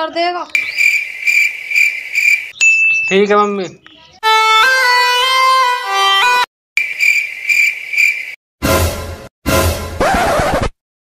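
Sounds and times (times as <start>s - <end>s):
cricket chirping: 0.6s - 2.6s, 6.8s - 8.4s.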